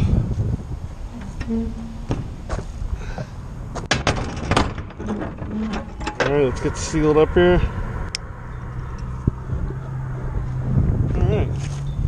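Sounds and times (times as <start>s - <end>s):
trailer door shutting and latching: 3.8s - 6.4s.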